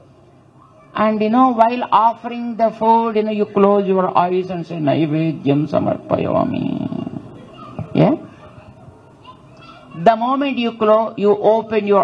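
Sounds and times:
faint audience murmuring: 0.0s - 1.0s, 5.7s - 10.2s
man speaking into microphone: 1.0s - 8.3s.

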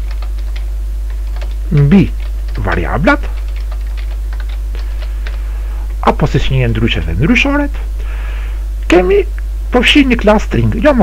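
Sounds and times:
keyboard typing clicks: 0.0s - 1.6s, 2.2s - 5.4s
low electrical hum: 0.0s - 11.0s.

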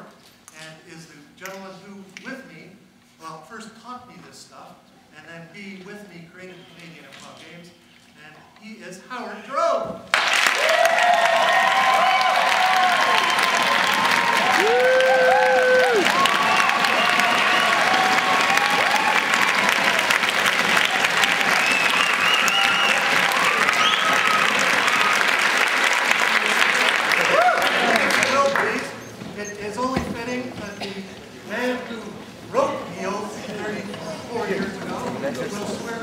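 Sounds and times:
crowd applauding and cheering: 10.1s - 29.0s
shouts and whoops: 10.5s - 20.0s, 20.8s - 25.4s, 27.2s - 28.2s.

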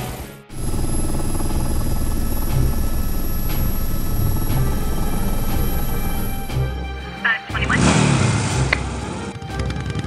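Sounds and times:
toy helicopter rotor chopping: 0.5s - 6.7s.

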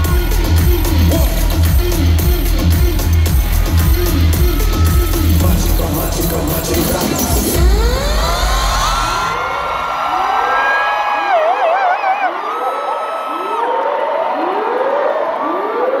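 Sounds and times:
rising siren-like sweep: 7.4s - 16.0s.

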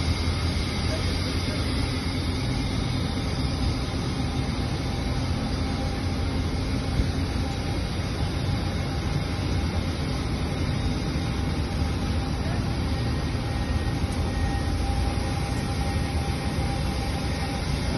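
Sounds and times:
oxygen vaporizer rushing roar: 10.7s - 17.9s.

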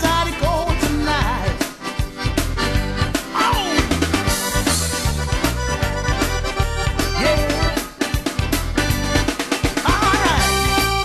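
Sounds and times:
bass notes: 0.0s - 11.0s
steady drum beat: 0.0s - 11.0s
piano accordion: 1.2s - 9.7s, 10.5s - 11.0s.

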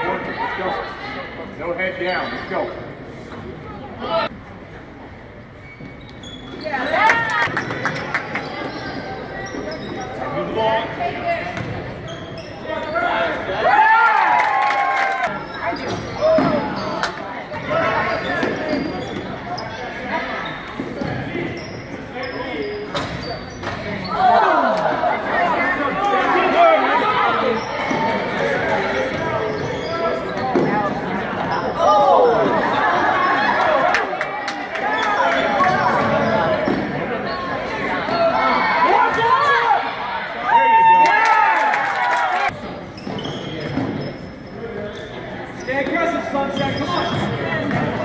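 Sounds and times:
voices echoing in hall: 0.0s - 48.0s
sneaker squeaks: 1.9s - 3.4s, 5.4s - 13.4s, 15.3s - 24.5s, 27.0s - 33.7s, 34.8s - 39.6s, 42.6s - 48.0s.

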